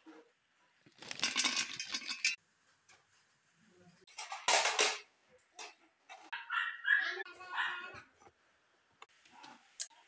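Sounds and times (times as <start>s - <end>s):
dry chunks rattling into metal bowl: 1.0s - 2.4s.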